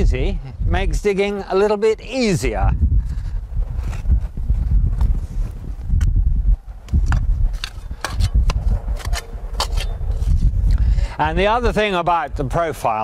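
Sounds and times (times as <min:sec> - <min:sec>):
spade crunching into soil: 0:07.1 - 0:10.5.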